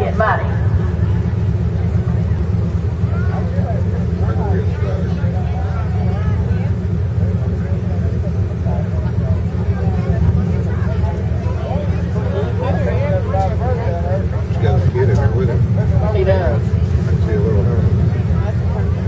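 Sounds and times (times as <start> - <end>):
crowd chatter: 0.0 - 19.0
truck engine idling: 0.0 - 19.0.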